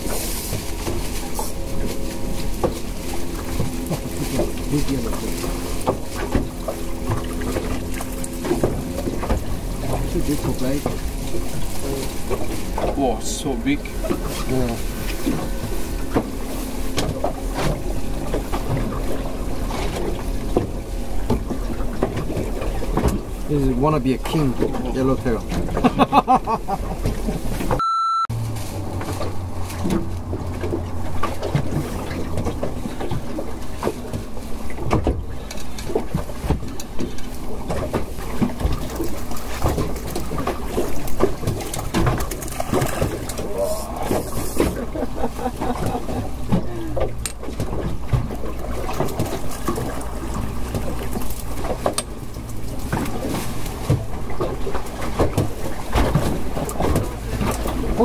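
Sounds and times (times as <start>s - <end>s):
water on choppy sea: 0.0s - 58.0s
wind: 0.0s - 58.0s.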